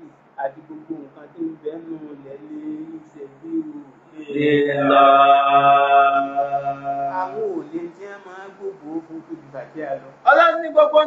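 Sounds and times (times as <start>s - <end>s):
man chanting into a microphone: 2.4s - 7.7s.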